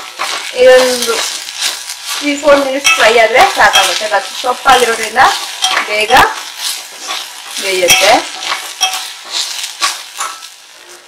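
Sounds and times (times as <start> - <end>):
leaves sizzling: 0.0 - 11.0
spoon scraping metal pot: 0.0 - 11.0.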